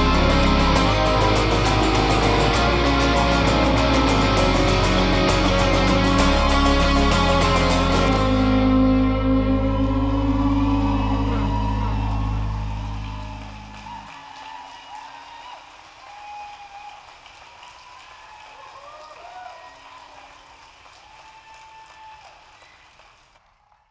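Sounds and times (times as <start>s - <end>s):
live band closing chord: 0.0s - 14.1s
audience applauding and cheering: 0.0s - 23.9s.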